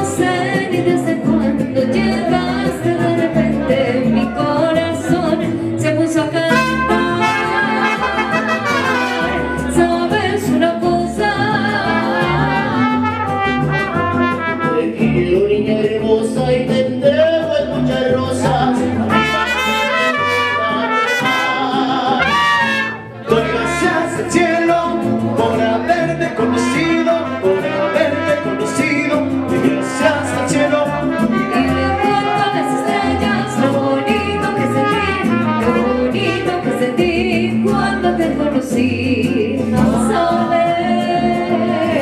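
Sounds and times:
man singing into microphone: 0.0 - 42.0
strummed guitar: 0.0 - 42.0
trumpets: 6.5 - 9.9, 12.0 - 15.0, 19.1 - 24.6, 26.6 - 32.6, 33.8 - 36.7.

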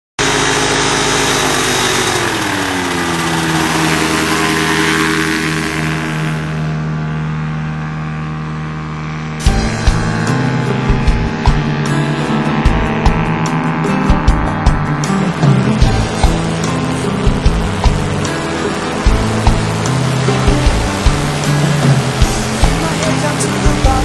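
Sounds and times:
ultralight plane engine and propeller: 0.2 - 24.0
music with hard drum beat: 9.4 - 24.0.

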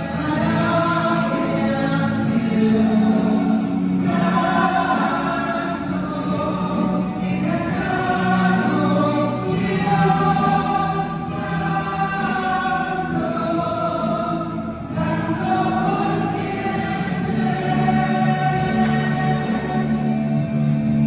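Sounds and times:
group singing worship song: 0.0 - 21.0.

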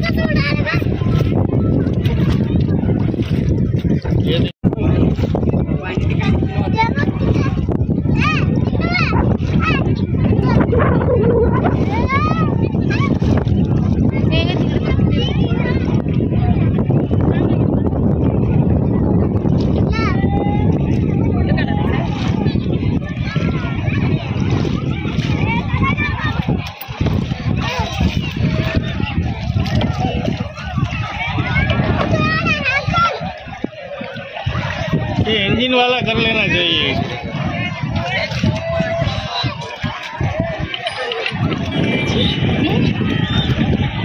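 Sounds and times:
people chattering outdoors: 0.0 - 44.0
wind buffeting microphone: 0.0 - 44.0
voices calling out: 20.1 - 44.0.

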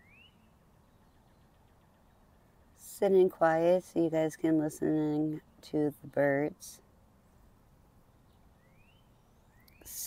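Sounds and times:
thin rising bird chirps: 0.0 - 2.6, 7.3 - 10.0.

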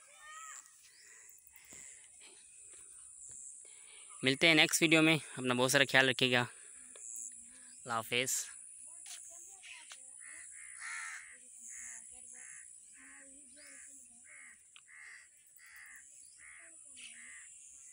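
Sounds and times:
birds cawing faintly: 0.0 - 5.5, 9.3 - 17.9
steady high-pitched hiss: 0.0 - 10.0.

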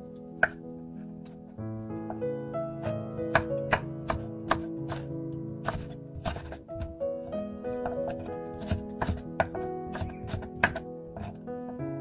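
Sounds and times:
knife knocking on cutting board: 8.6 - 11.3.

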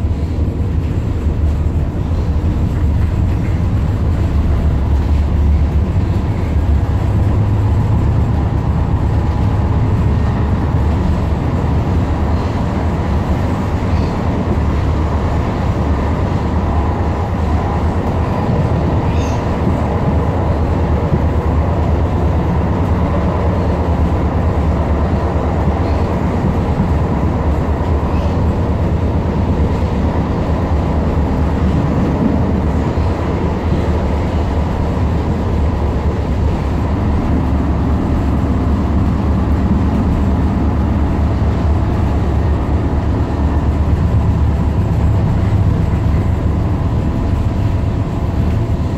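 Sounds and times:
train wheels rumbling on rails: 0.0 - 48.9.

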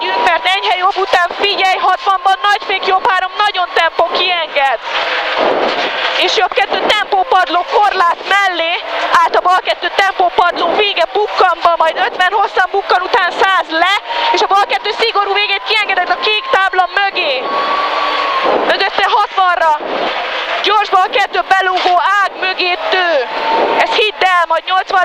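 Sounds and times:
rush of noise: 0.0 - 24.5
road noise: 0.0 - 24.7.

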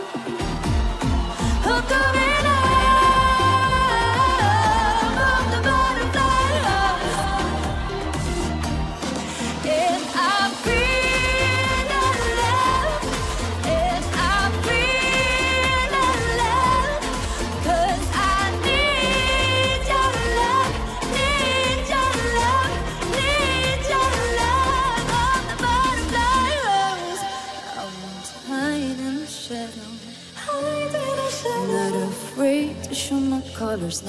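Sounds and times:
pop accompaniment with bass beat: 0.0 - 34.0
woman singing pop ballad: 0.0 - 34.0.

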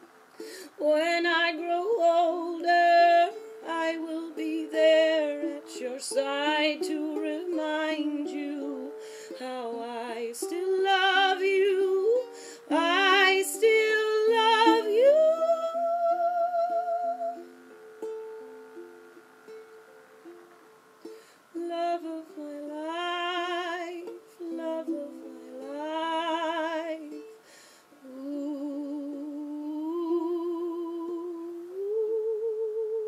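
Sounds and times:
fingerpicked ukulele: 0.0 - 33.0
woman singing wordless note: 0.7 - 17.6, 21.5 - 27.3, 28.0 - 33.0
woman humming with vibrato: 28.0 - 33.0.

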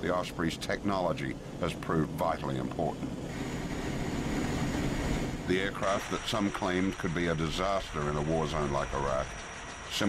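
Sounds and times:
aircraft engines and rotors droning: 0.0 - 10.0
faint high whine: 0.0 - 10.0.

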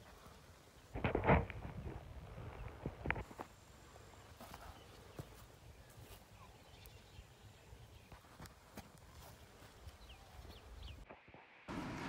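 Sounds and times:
faint low wind rumble: 0.2 - 8.1
small bird chirping: 4.5 - 8.5.

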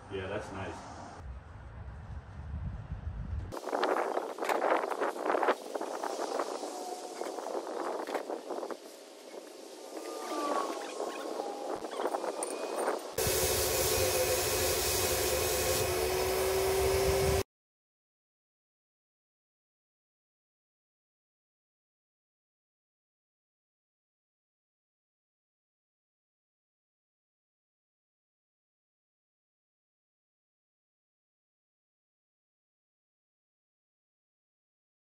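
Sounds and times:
spray gun hiss: 3.6 - 17.4
paint sprayer turbine whine: 10.7 - 17.4.

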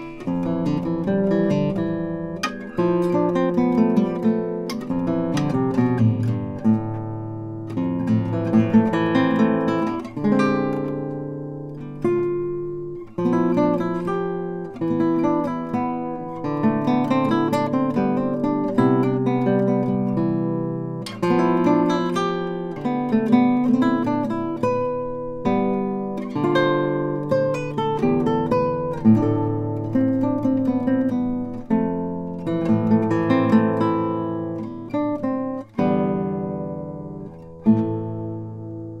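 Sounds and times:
classical guitar playing: 0.0 - 39.0.

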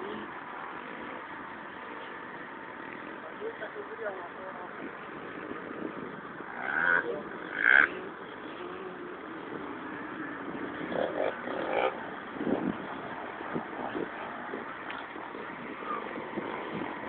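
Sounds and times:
road and engine noise inside vehicle: 0.0 - 17.0.

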